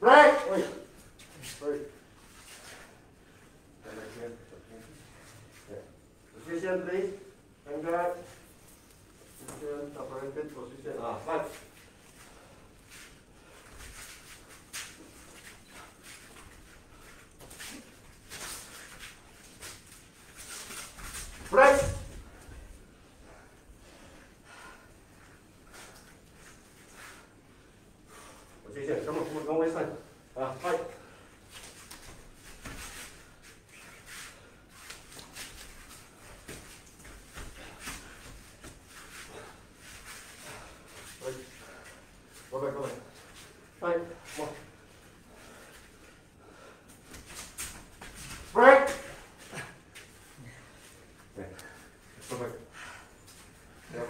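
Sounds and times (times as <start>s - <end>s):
bare feet scuffing on mat: 31.5s - 43.6s.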